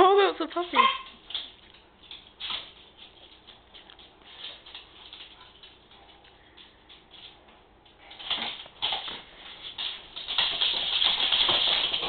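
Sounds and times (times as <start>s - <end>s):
dog claws clicking on tile: 0.7s - 12.0s.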